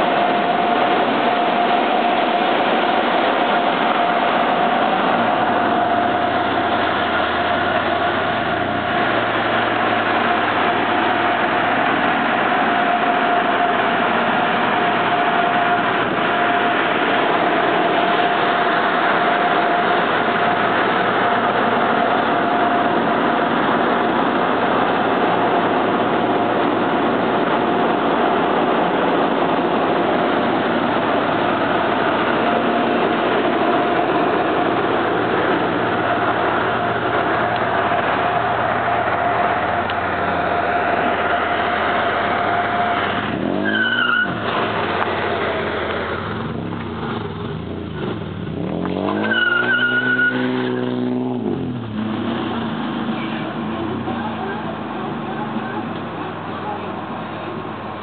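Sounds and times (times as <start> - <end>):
car engine at high revs: 0.0 - 58.0
tires squealing: 0.0 - 58.0.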